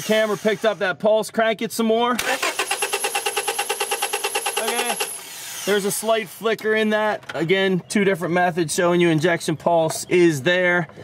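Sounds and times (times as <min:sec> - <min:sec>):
car engine cranking with starter whine: 0:02.2 - 0:05.6.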